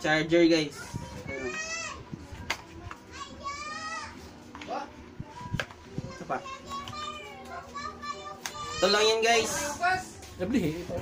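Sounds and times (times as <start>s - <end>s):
children chattering and calling: 0.1s - 11.0s.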